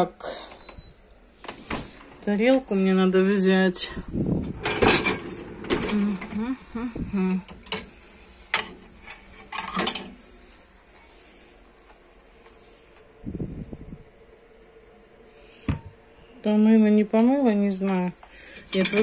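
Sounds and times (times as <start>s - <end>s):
dishes and wire rack clinking: 7.5s - 10.2s, 18.5s - 19.0s.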